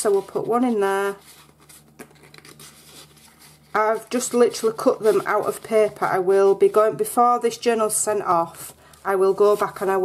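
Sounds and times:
card scraping and rustling: 0:00.0 - 0:06.8.

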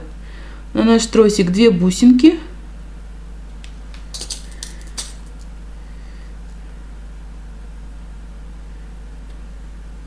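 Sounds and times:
metal beads clicking in a tin: 0:04.1 - 0:05.5.

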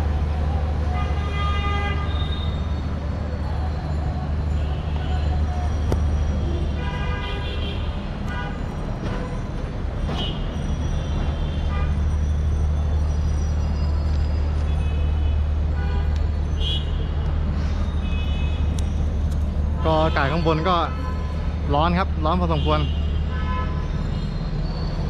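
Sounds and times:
low rumble of traffic: 0:00.0 - 0:25.0.

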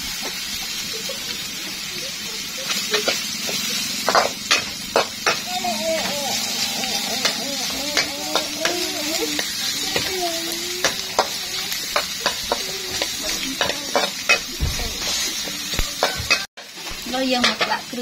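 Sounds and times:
food sizzling in oil: 0:00.0 - 0:18.0
metal spatula scraping wok: 0:10.9 - 0:16.5.

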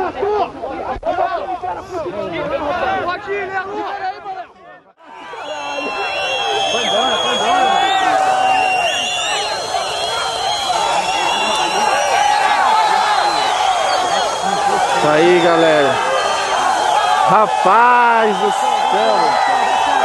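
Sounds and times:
crowd shouting and cheering: 0:00.0 - 0:20.0.

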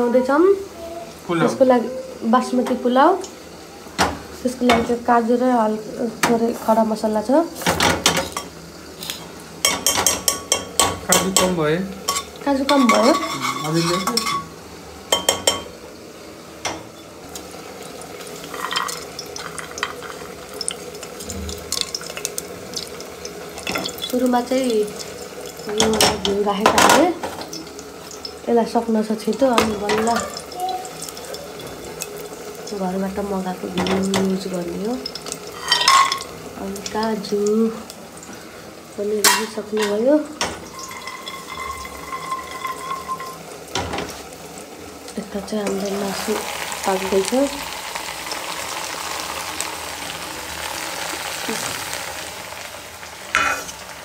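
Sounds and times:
faint cooking hiss: 0:00.0 - 0:54.0
spices sizzling in hot oil: 0:00.0 - 0:54.0
pot clunking on metal grate: 0:07.6 - 0:08.5, 0:09.6 - 0:14.5, 0:15.1 - 0:15.8, 0:23.6 - 0:24.1, 0:25.6 - 0:27.5, 0:29.5 - 0:30.5, 0:33.7 - 0:34.4, 0:35.6 - 0:36.4, 0:39.2 - 0:44.2.

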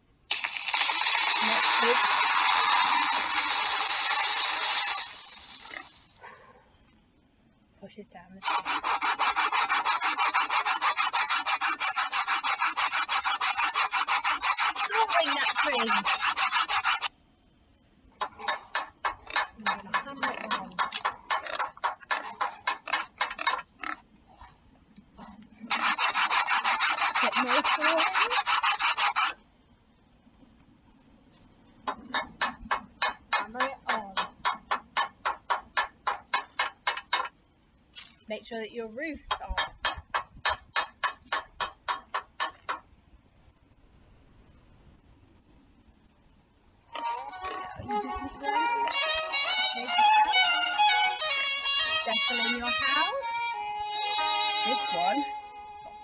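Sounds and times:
saw cutting wood: 0:00.3 - 0:06.0, 0:08.4 - 0:17.1, 0:18.5 - 0:23.6, 0:25.7 - 0:29.4, 0:32.4 - 0:37.3, 0:47.4 - 0:53.2.

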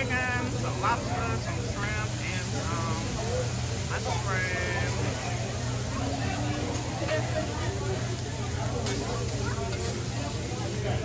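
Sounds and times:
food sizzling on a griddle: 0:00.0 - 0:11.0
people chattering: 0:00.0 - 0:11.0.

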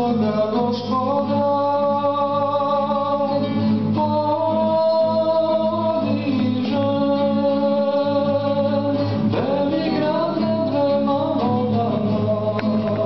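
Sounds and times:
man singing slow song: 0:00.0 - 0:13.0
nylon-string guitar: 0:00.0 - 0:13.0.

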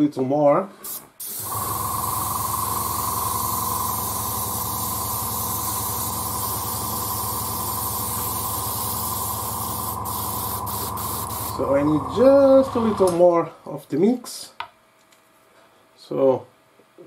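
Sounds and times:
airbrush spraying hiss: 0:00.8 - 0:13.1.

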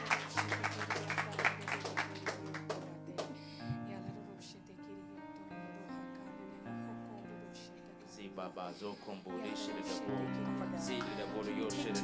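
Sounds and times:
hands clapping in rhythm: 0:00.0 - 0:03.4, 0:10.8 - 0:12.0
background music: 0:00.0 - 0:12.0.

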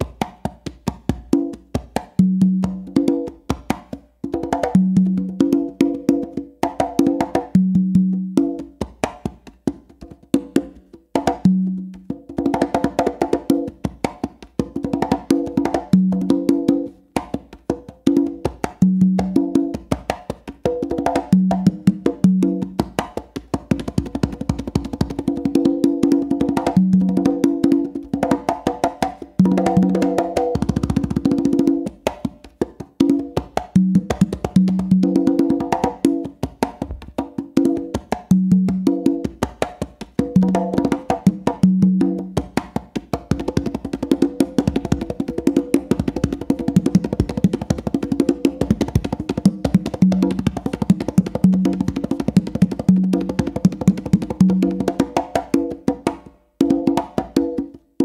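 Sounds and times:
congas played by hand: 0:00.0 - 0:58.0.

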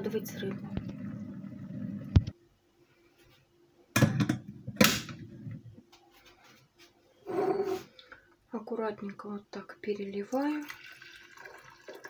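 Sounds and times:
low steady hum: 0:00.0 - 0:11.4.

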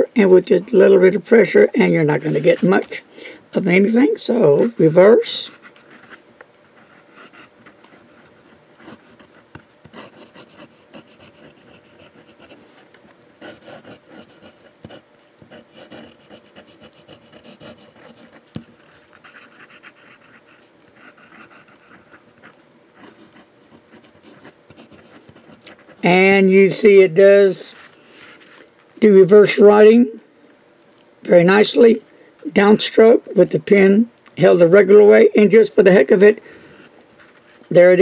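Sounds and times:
fountain pen scratching paper: 0:05.5 - 0:12.8, 0:13.4 - 0:26.0.

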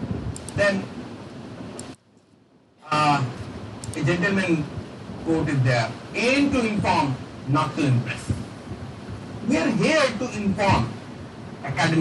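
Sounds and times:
room noise: 0:00.0 - 0:12.0
man's voice: 0:09.4 - 0:11.0, 0:11.6 - 0:12.0.

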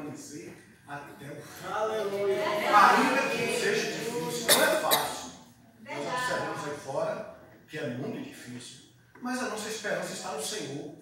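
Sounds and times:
man coughing into microphone: 0:04.4 - 0:05.4.

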